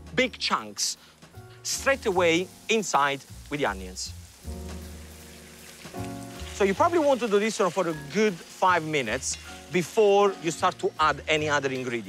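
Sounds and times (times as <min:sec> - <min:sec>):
meat sizzling in a pot: 0:00.0 - 0:12.0
soft background music: 0:00.0 - 0:12.0.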